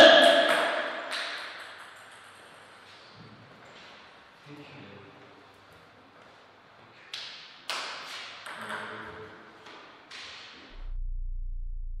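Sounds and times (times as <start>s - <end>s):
deep steady hum: 10.7s - 12.0s.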